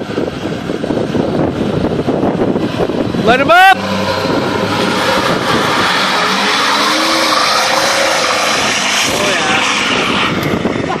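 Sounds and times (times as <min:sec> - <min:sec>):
diesel pickup engine roaring: 0:00.0 - 0:11.0.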